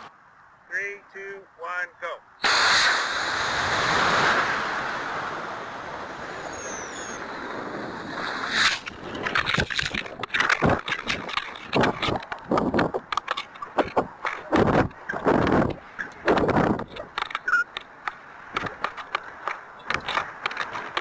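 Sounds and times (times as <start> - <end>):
wind buffeting a microphone: 3.2 - 17.4.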